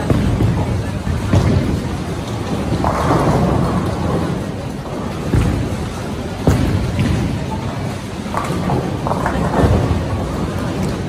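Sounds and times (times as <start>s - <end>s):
bowling balls rolling: 0.0s - 11.0s.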